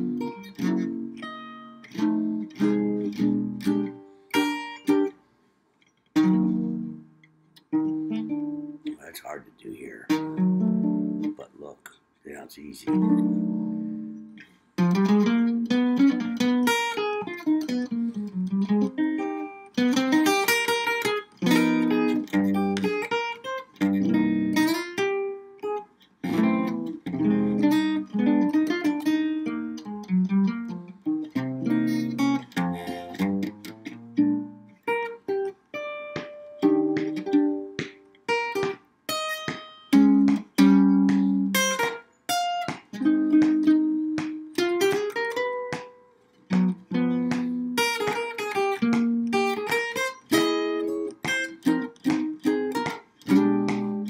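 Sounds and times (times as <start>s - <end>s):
solo jazz guitar: 0.0s - 5.2s, 6.0s - 54.0s.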